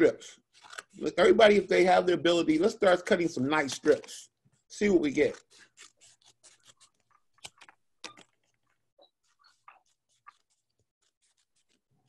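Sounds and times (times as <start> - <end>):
paper crinkling: 0.4 - 1.6, 3.6 - 12.0
scissors snipping paper: 5.0 - 12.0.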